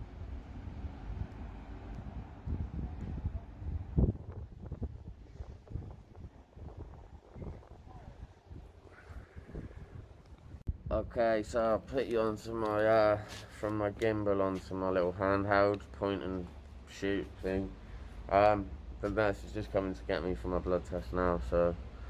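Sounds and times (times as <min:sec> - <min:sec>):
wind buffeting microphone: 0:00.0 - 0:13.1.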